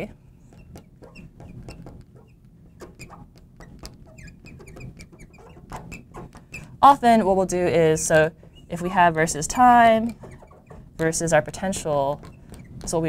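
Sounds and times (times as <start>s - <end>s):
marker squeaking on glass: 0.0s - 13.0s.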